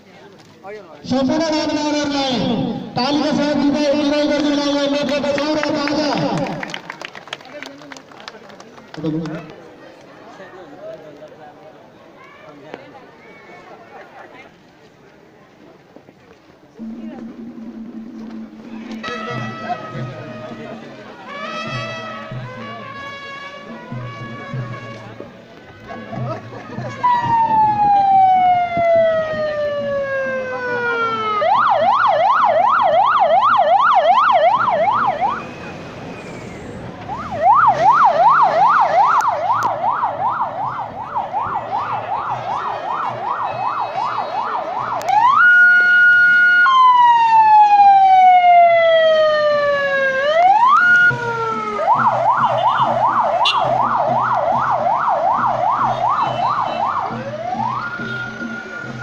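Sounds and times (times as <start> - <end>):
electronic vehicle siren: 16.8 - 19.3, 26.9 - 59.0.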